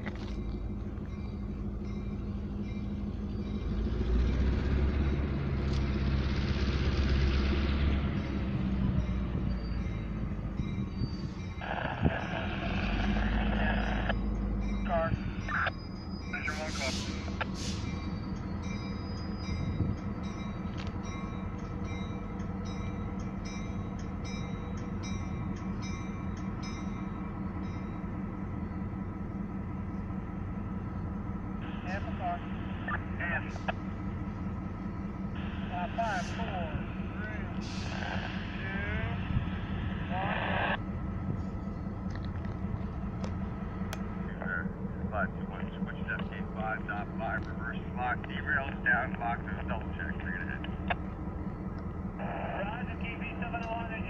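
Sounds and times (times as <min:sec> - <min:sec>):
diesel locomotive engine running: 0:00.0 - 0:54.0.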